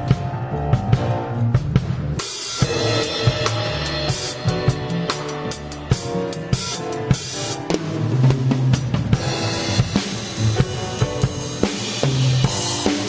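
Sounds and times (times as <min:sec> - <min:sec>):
upright double bass walking notes: 0:00.0 - 0:11.4
drum kit playing: 0:00.0 - 0:13.0.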